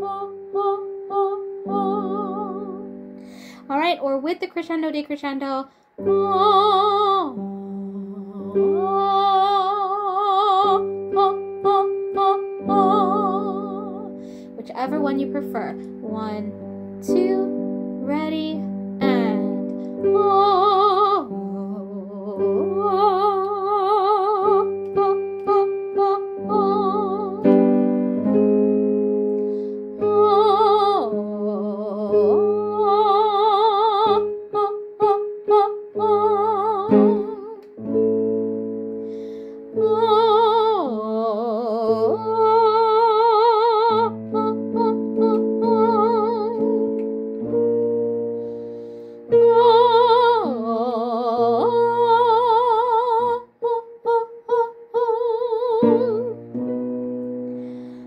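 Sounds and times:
woman singing with vibrato: 0:00.0 - 0:27.6, 0:30.0 - 0:37.6, 0:39.6 - 0:47.0, 0:49.3 - 0:56.5
piano chords: 0:00.0 - 0:58.0.

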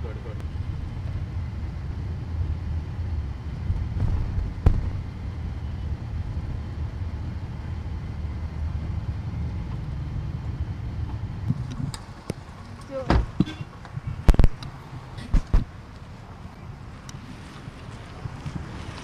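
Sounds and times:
city traffic rumble: 0:00.0 - 0:19.0
sharp knock: 0:04.0 - 0:05.0.

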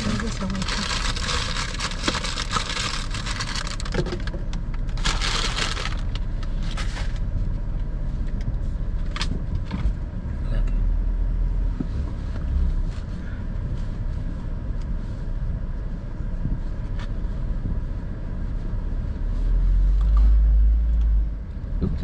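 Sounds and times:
car engine rumbling: 0:00.0 - 0:22.0.

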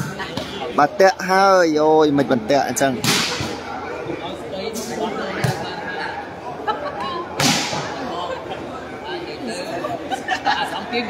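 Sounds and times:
crowd chatter: 0:00.0 - 0:11.0
volleyball smack: 0:03.0 - 0:03.6, 0:07.4 - 0:08.0.

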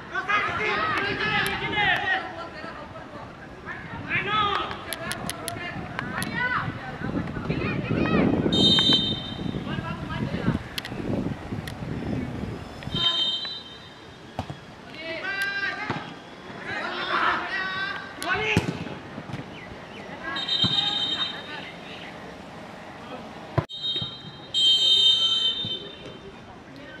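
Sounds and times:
shrill whistle blasts: 0:08.5 - 0:09.6, 0:12.9 - 0:14.3, 0:20.3 - 0:21.5, 0:23.7 - 0:26.0.

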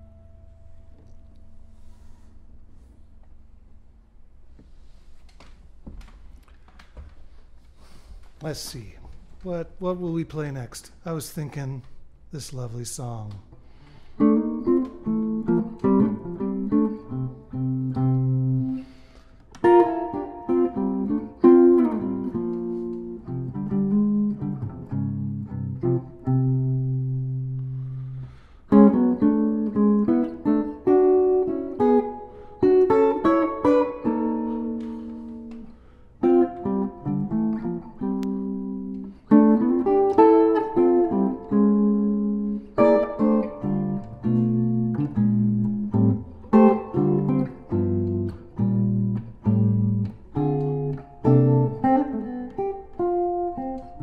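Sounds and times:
solo jazz guitar: 0:00.0 - 0:03.8, 0:07.6 - 0:54.0.

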